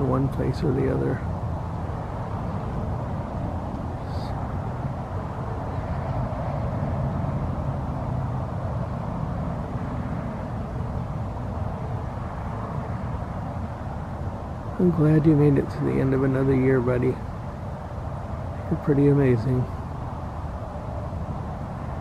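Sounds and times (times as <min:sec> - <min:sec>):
low engine-like drone: 0:00.0 - 0:22.0.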